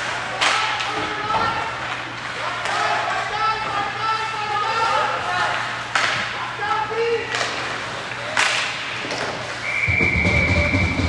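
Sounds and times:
hockey sticks knocking puck: 0:00.0 - 0:03.9, 0:05.4 - 0:06.4, 0:07.2 - 0:09.6
voices around rink: 0:00.0 - 0:11.0
referee's whistle: 0:09.6 - 0:11.0.

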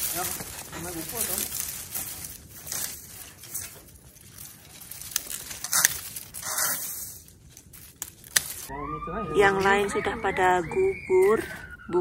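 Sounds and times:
dry leaves rustling and crackling: 0:00.0 - 0:12.0.

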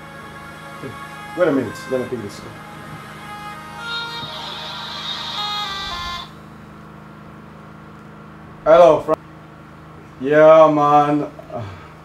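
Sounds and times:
steady low hum: 0:00.0 - 0:12.0
phone ringtone melody: 0:03.2 - 0:06.4.

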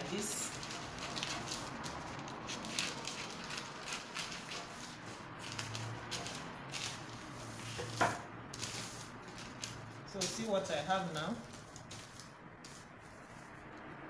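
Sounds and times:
scissors cutting paper: 0:00.0 - 0:12.9.

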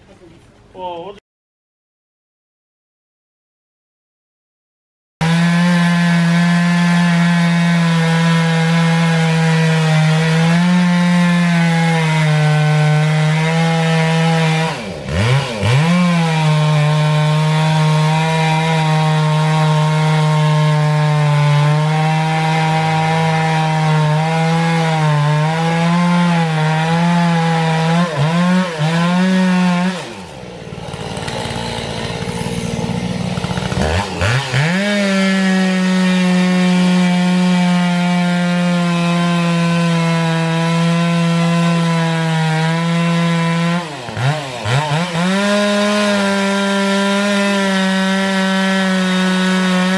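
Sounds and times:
chainsaw cutting wood: 0:05.2 - 0:49.9.

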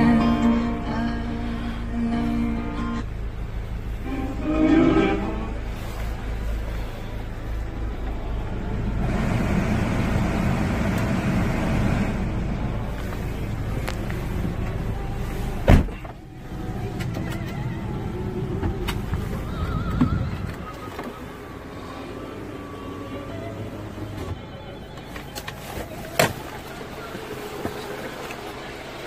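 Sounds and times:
vehicle cabin low rumble: 0:00.0 - 0:29.0.

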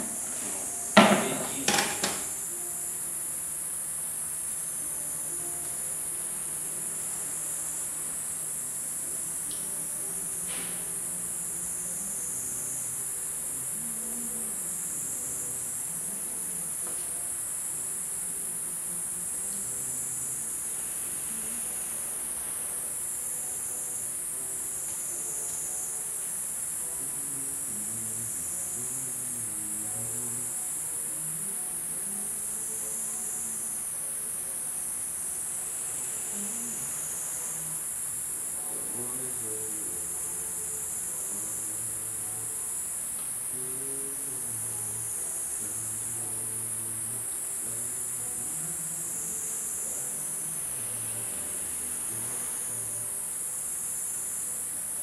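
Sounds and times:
faint music: 0:00.0 - 0:55.0
high-pitched insect chorus: 0:00.0 - 0:55.0.

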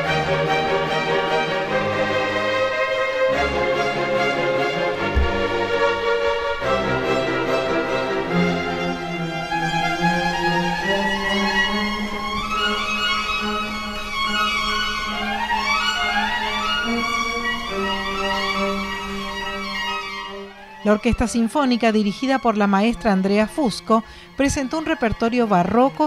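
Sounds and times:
solo violin fast runs: 0:00.0 - 0:26.0
string orchestra playing: 0:00.0 - 0:26.0.

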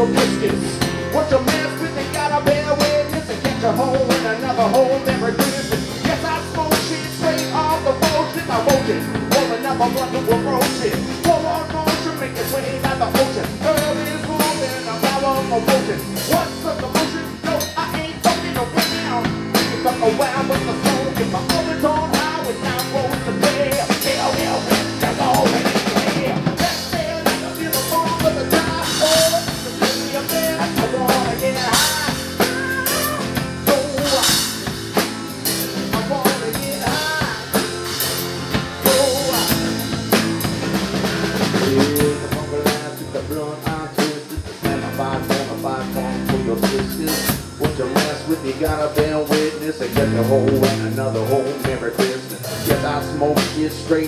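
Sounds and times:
acoustic guitar: 0:00.0 - 0:54.0
drum kit played with sticks: 0:00.0 - 0:54.0.

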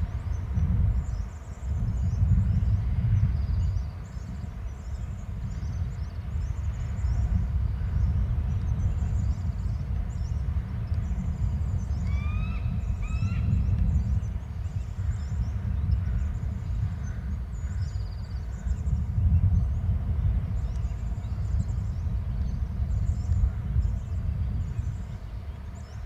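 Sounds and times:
small birds chirping: 0:00.0 - 0:26.0
steady low rumble: 0:00.0 - 0:26.0
rising bird calls: 0:11.8 - 0:14.1.

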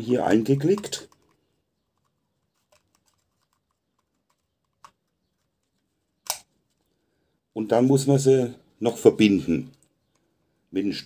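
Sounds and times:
plastic clicks and taps: 0:00.6 - 0:06.5
loud plastic snap: 0:06.2 - 0:06.5.

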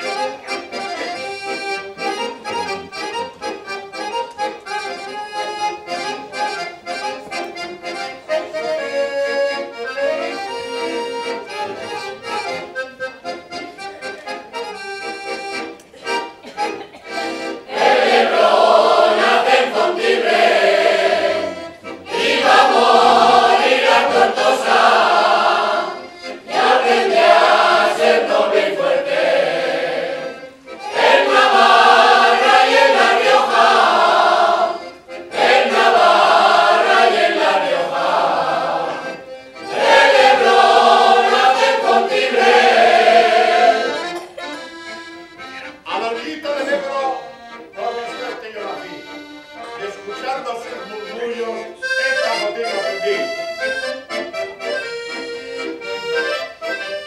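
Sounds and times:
accordion: 0:00.0 - 0:57.0
mixed choir singing: 0:17.6 - 0:44.2.

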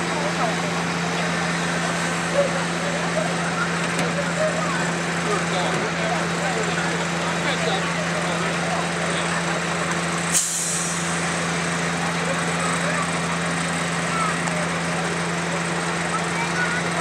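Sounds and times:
diesel locomotive idling: 0:00.0 - 0:17.0
short sharp hiss: 0:10.3 - 0:11.2.

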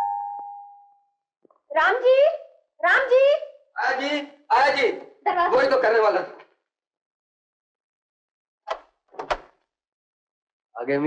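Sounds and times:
door latch and handle clacking: 0:08.7 - 0:09.6.

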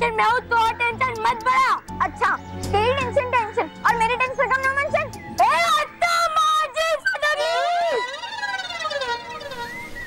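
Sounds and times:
comic siren-like falling glide: 0:07.3 - 0:10.0.

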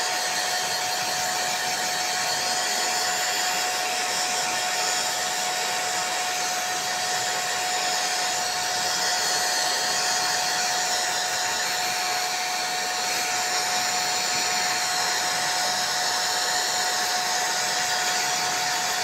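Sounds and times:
hair dryer blowing: 0:00.0 - 0:19.0.

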